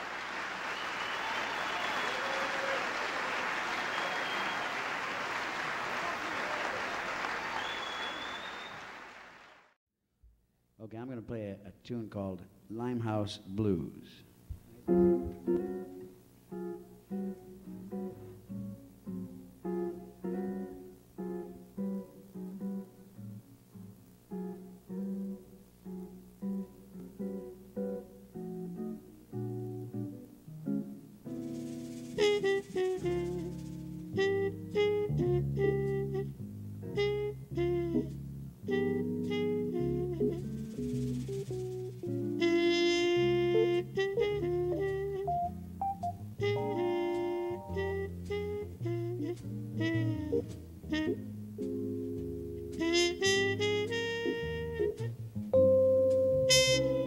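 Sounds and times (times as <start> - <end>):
jazz guitar plucked notes: 14.5 - 57.0
bass: 29.4 - 57.0
jazz band playing: 31.3 - 57.0
drums: 31.4 - 34.7, 40.3 - 42.8
trumpet line: 32.2 - 36.3, 36.9 - 41.1, 42.3 - 45.6, 46.4 - 51.2, 52.8 - 55.1, 56.3 - 57.0.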